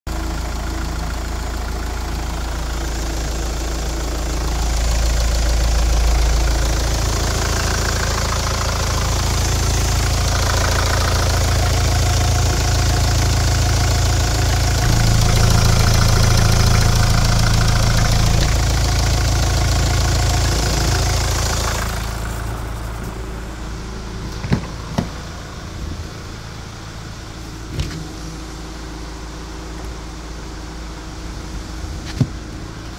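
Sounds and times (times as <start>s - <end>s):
diesel engine idling: 0.1s - 32.9s.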